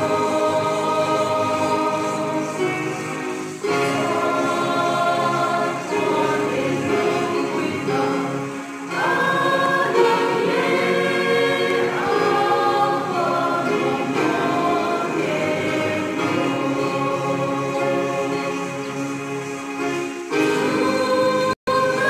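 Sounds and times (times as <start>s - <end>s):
electronic keyboard: 0.0s - 22.0s
mixed choir singing: 0.0s - 22.0s.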